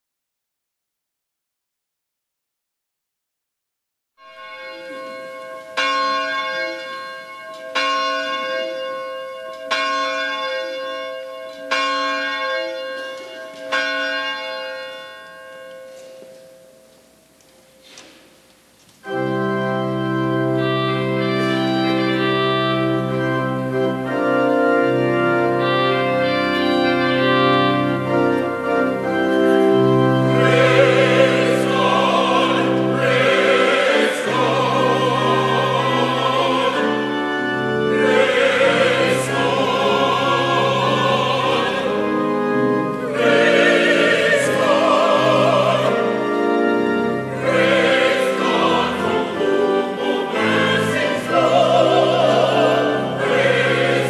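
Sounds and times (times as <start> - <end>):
pipe organ chords: 19.0 - 54.0
choir singing: 25.0 - 54.0.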